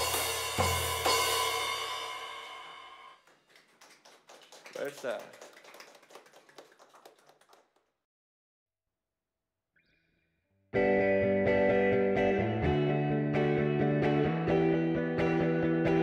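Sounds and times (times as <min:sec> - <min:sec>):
cymbals ringing: 0:00.0 - 0:03.2.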